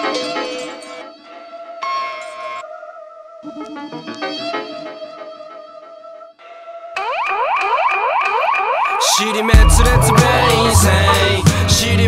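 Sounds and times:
steady high tone: 9.0s - 12.0s
synthesizer pitch sweeps: 9.0s - 12.0s.

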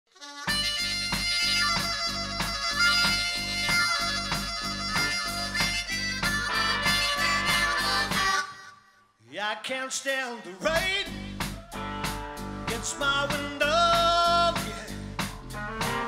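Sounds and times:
harmonica: 0.1s - 9.2s
drums keeping a steady beat: 0.4s - 8.5s, 10.7s - 16.0s
bass guitar: 0.5s - 8.4s, 10.7s - 16.0s.

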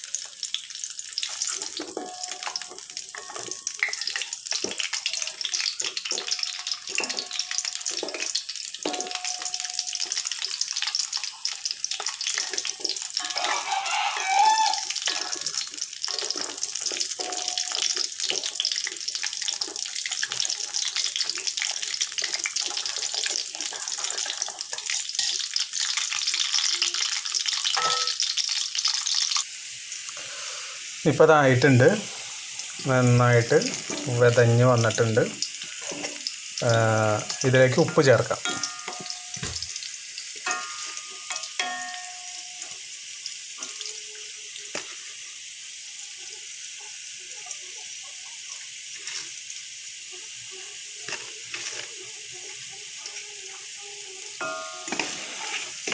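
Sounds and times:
food sizzling in hot oil: 0.0s - 55.9s
wooden spatula stirring in pan: 1.2s - 28.3s, 32.0s - 36.3s, 48.8s - 49.4s, 51.0s - 53.7s, 54.4s - 55.9s
man speaking: 31.1s - 32.1s, 32.8s - 35.4s, 36.6s - 38.5s.

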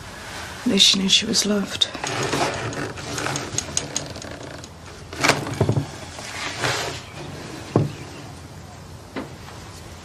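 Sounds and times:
small objects clicking and rattling: 1.9s - 4.8s.

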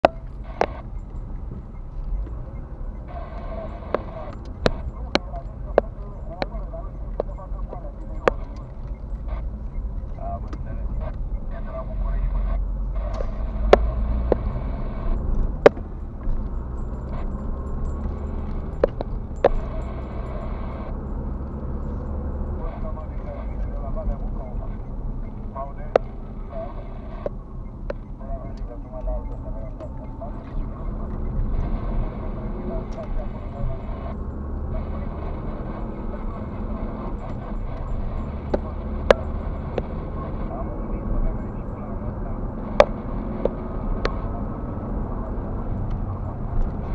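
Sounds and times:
car road and engine rumble: 0.0s - 46.9s.

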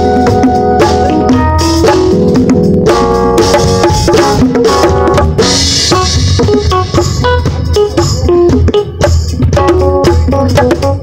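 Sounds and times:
bass line: 0.0s - 11.0s
bongos played by hand: 0.0s - 11.0s
drum kit: 0.0s - 11.0s.

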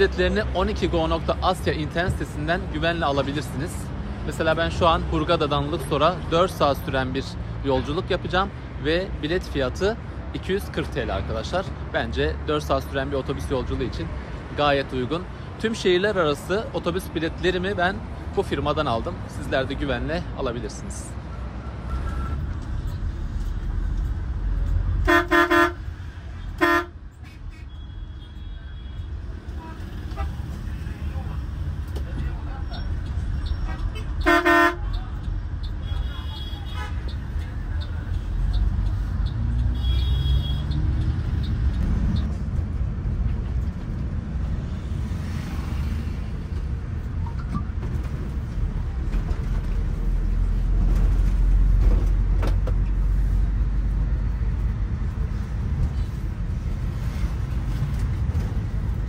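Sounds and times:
traffic rumble: 0.0s - 59.0s
vehicle horn honking: 25.0s - 25.9s, 26.5s - 30.4s, 33.5s - 35.0s, 39.7s - 40.8s.

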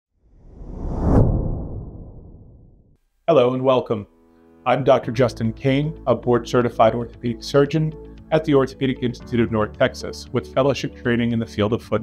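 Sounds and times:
whoosh transition effect: 0.2s - 3.0s.

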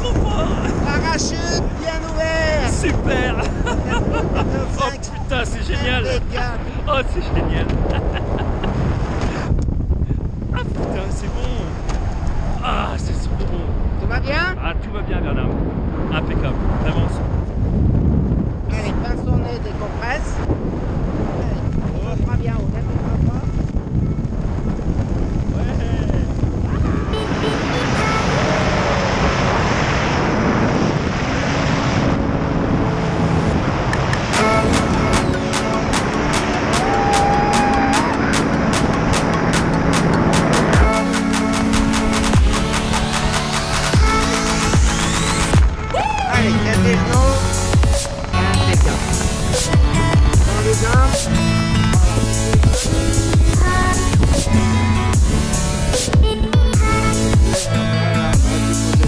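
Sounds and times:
wind rumbling over microphone: 0.0s - 59.0s
electronic music with pulsing beat: 34.3s - 59.0s.

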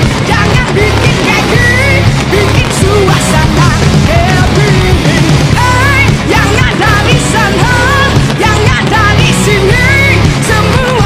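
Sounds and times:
loud rock music: 0.0s - 11.0s.

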